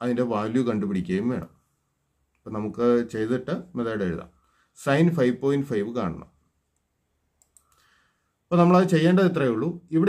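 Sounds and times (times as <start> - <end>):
person speaking: 0.0 - 7.8, 8.4 - 10.0
computer mouse clicks: 6.7 - 7.9.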